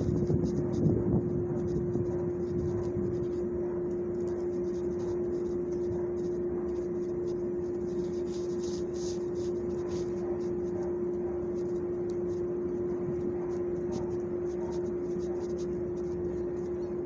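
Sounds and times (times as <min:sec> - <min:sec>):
droning hum with low rumble: 0:00.0 - 0:17.0
rubber glove scratching dog fur: 0:00.0 - 0:17.0.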